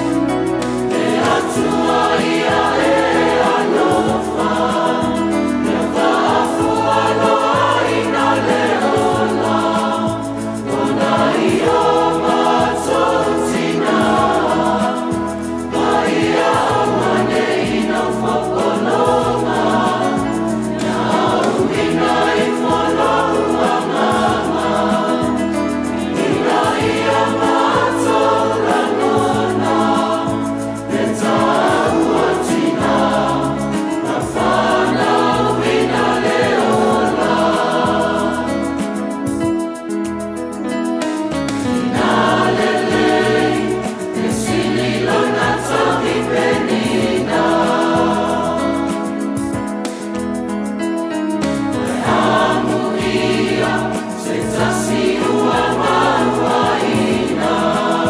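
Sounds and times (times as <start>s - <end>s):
mixed choir singing in harmony: 0.0s - 58.0s
steady bass accompaniment: 0.0s - 58.0s.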